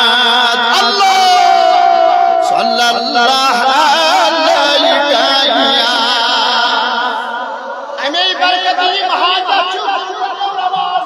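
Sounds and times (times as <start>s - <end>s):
man chanting over loudspeaker: 0.0s - 11.0s.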